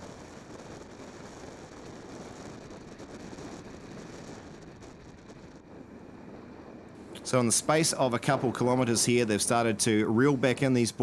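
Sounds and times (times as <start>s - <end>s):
wind rushing past vehicle: 0.0s - 11.0s
road noise: 0.1s - 11.0s.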